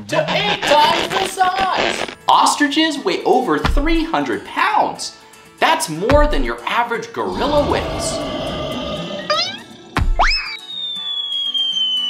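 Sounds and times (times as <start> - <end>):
music: 0.0 - 12.0
cartoon whistle: 9.3 - 12.0.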